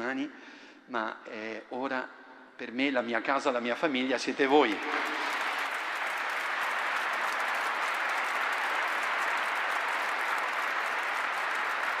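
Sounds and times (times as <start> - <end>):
crowd applauding: 4.4 - 12.0.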